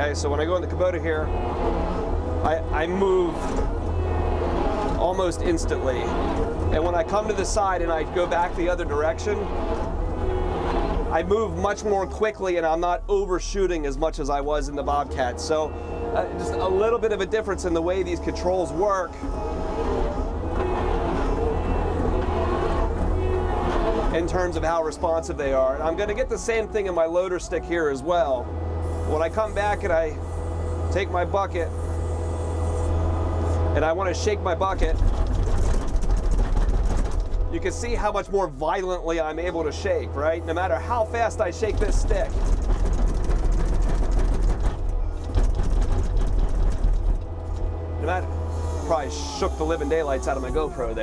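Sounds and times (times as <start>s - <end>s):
loader bucket rattling clatter: 0.0s - 13.2s, 14.0s - 28.4s, 33.0s - 49.3s
diesel engine running: 0.0s - 51.0s.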